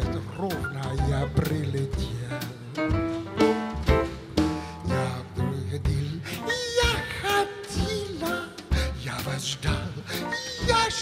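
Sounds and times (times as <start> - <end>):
person singing: 0.0 - 3.0.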